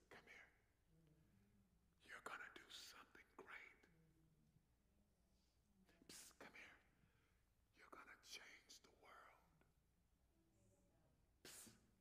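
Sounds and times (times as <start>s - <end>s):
person whispering into microphone: 0.0s - 1.2s, 2.0s - 4.2s, 5.8s - 7.0s, 7.7s - 9.8s, 11.4s - 12.0s.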